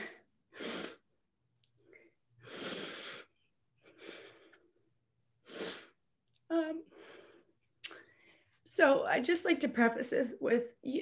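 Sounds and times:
woman breathing deeply: 2.4 - 4.7.

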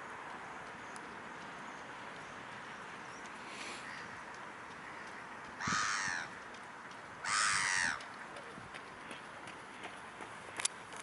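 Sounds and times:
loud bird call: 7.2 - 8.0.

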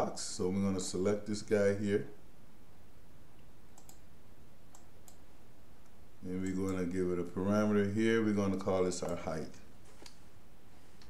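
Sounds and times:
low steady background hiss: 0.0 - 11.0
computer mouse clicks: 3.7 - 4.0, 4.7 - 5.2.

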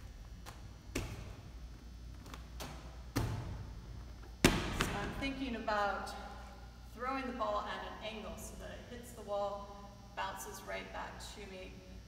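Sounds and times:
ball slapping into hands: 0.4 - 1.4, 4.3 - 5.2
ball thudding against wall: 0.4 - 1.4, 2.5 - 3.7, 4.4 - 5.2.

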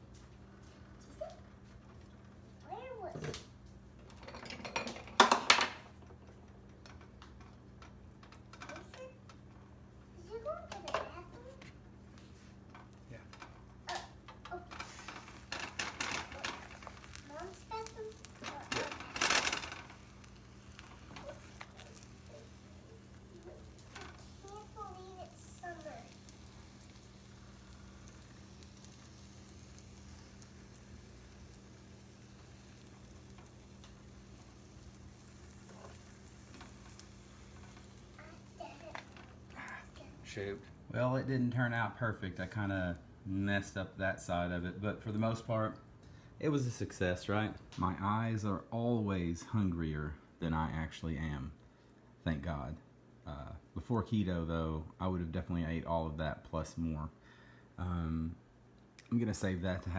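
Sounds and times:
eggs sizzling in a frying pan: 0.0 - 45.7
spatula scraping a pan: 14.6 - 25.4.

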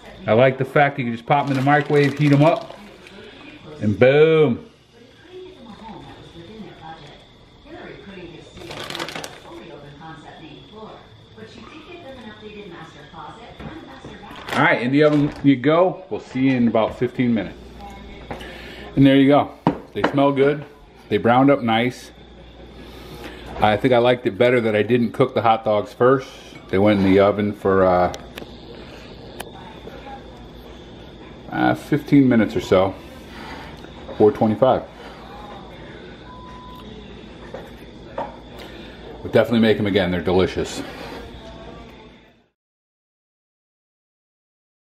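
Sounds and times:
low background hum: 0.0 - 42.5
plastic bag crinkling: 1.2 - 3.5, 8.5 - 9.7, 14.3 - 15.5.

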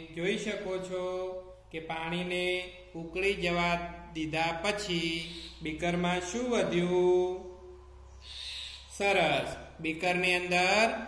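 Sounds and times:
man speaking: 0.0 - 7.6, 8.9 - 11.0
man breathing: 8.2 - 8.9.

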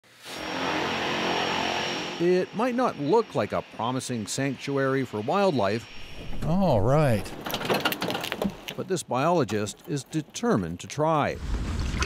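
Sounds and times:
thin high whine: 0.2 - 7.6.

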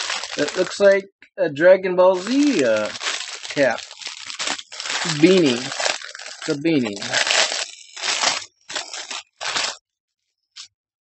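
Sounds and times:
wrapping crinkling and tearing: 0.0 - 1.0, 2.2 - 9.8.

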